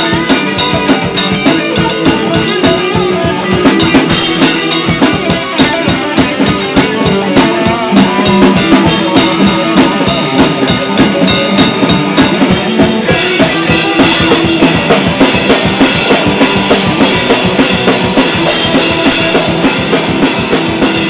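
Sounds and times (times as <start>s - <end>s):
distorted electric guitars: 0.0s - 21.0s
drum kit beat: 0.0s - 21.0s.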